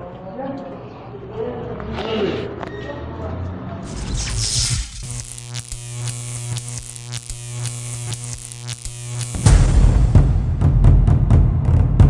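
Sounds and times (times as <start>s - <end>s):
crackling clicks: 3.9s - 9.6s
electric buzzing hum: 3.9s - 10.2s.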